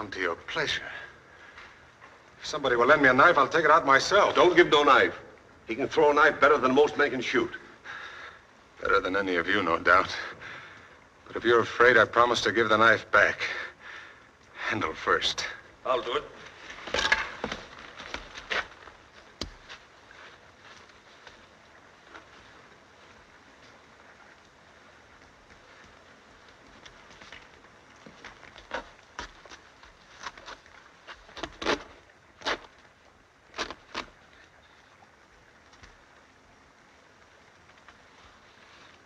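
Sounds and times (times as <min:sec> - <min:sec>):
faint steady hiss: 0:00.0 - 0:39.0
soft clicks and rustles: 0:16.4 - 0:39.0.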